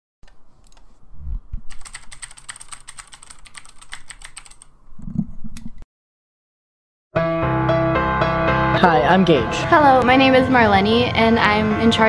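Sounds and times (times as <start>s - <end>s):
typing on computer keyboard: 1.7s - 4.7s.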